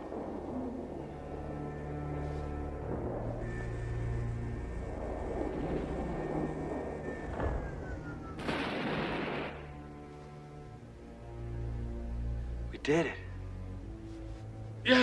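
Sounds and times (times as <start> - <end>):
orchestral score: 0.0 - 15.0
high tone sliding downward: 3.2 - 9.7
loud explosion: 6.9 - 9.7
sci-fi weapon fire: 8.4 - 9.7.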